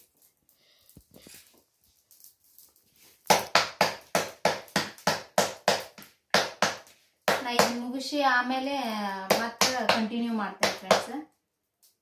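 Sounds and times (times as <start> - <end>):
hands slapping dough: 3.2 - 7.9, 9.2 - 11.2.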